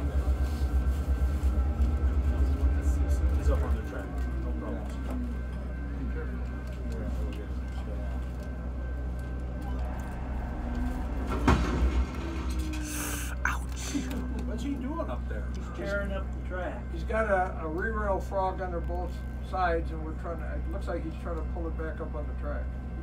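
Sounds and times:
locomotive engine deep rumble: 0.0 - 23.0.

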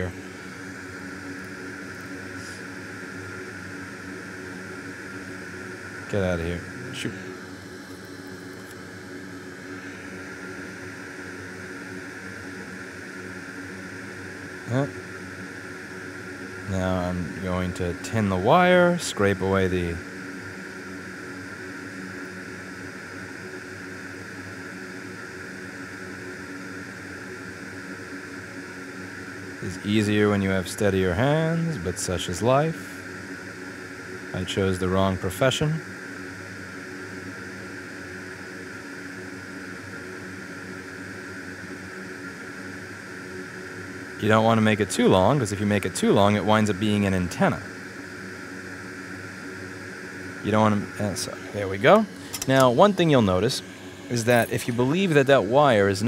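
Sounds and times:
fan whooshing: 0.0 - 20.2, 44.2 - 56.0
machinery hum and hiss: 0.0 - 56.0.

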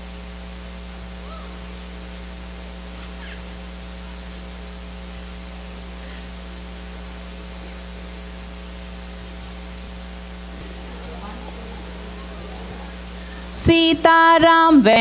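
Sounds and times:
constant hiss: 0.0 - 15.0
electrical hum: 0.0 - 15.0.

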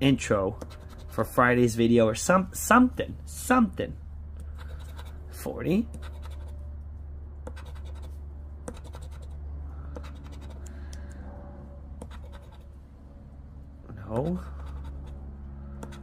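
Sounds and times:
low hum: 0.0 - 16.0.

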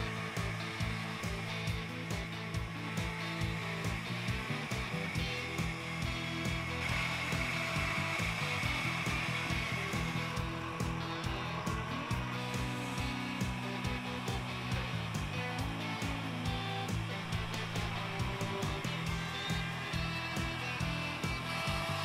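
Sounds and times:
band saw cutting wood: 0.0 - 22.0
techno music: 0.0 - 22.0.

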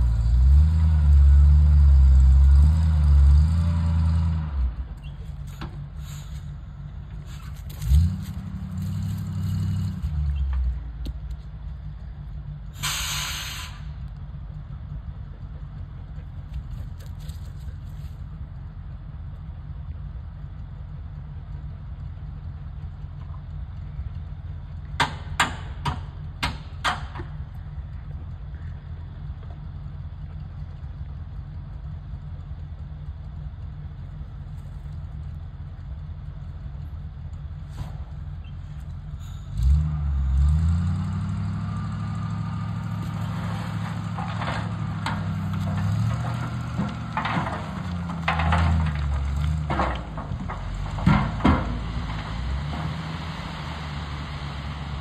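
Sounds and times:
truck engine idling and revving: 0.0 - 55.0
load sliding with knocks and rattles: 43.2 - 53.1.

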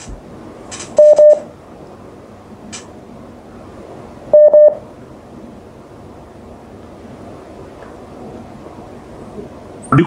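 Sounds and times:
short electronic beeps: 1.0 - 1.4, 4.4 - 4.8
telephone line hiss: 1.0 - 1.5, 4.3 - 4.8.

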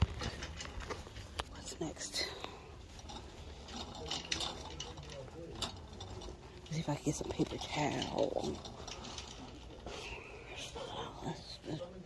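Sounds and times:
wheels rumbling: 0.0 - 12.0
shopping cart rattling: 1.9 - 12.0.

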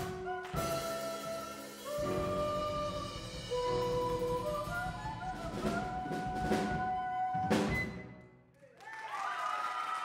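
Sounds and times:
live jazz combo playing: 0.0 - 8.2.

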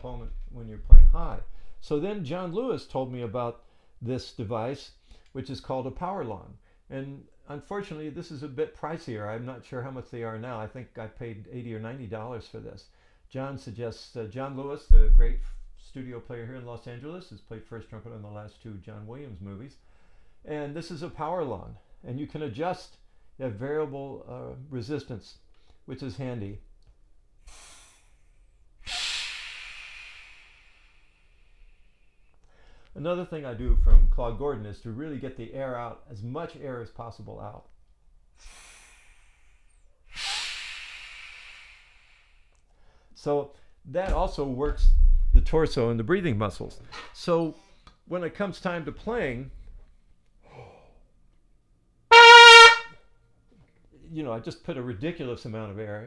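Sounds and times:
breath hissing through trainer: 27.4 - 32.0, 38.4 - 42.6
trumpet note: 52.1 - 53.0.

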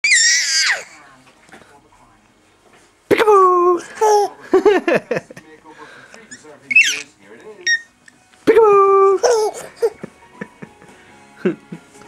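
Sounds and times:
baby squealing: 0.0 - 1.0, 6.7 - 7.0, 7.6 - 7.9, 8.8 - 9.9.

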